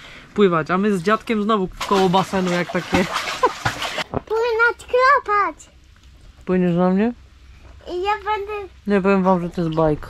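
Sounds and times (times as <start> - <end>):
child speaking: 4.2 - 5.8, 7.8 - 8.8.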